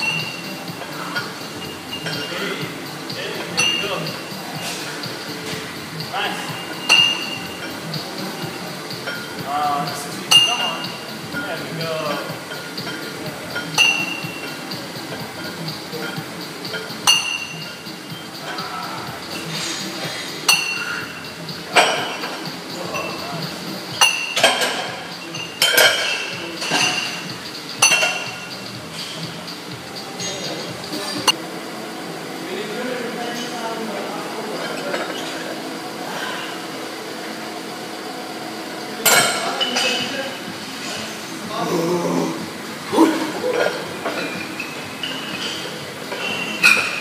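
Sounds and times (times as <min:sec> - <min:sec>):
faint constant hum: 0:00.0 - 0:47.0
iron weights clinking: 0:03.4 - 0:04.3, 0:06.4 - 0:08.0, 0:10.2 - 0:11.5, 0:12.5 - 0:17.8, 0:20.5 - 0:21.2, 0:23.9 - 0:27.2, 0:27.8 - 0:28.5.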